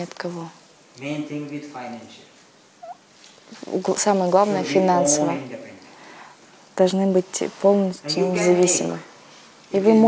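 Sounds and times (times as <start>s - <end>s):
man's wordless hesitation sound: 4.5s - 5.9s.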